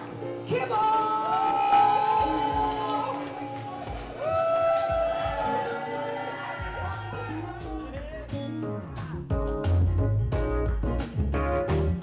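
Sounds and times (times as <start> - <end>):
bass: 0.0 - 12.0
drums: 0.0 - 12.0.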